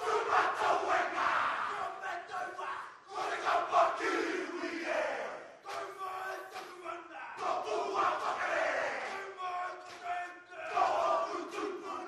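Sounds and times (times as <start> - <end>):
men chanting and shouting in unison: 0.0 - 12.0.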